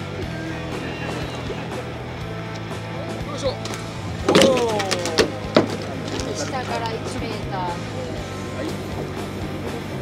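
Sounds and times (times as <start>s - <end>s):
background music: 0.0s - 10.0s
boat engine humming: 0.0s - 10.0s.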